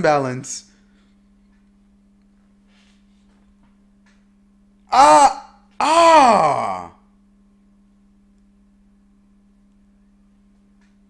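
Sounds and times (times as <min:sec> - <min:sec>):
man groaning: 0:04.9 - 0:07.0.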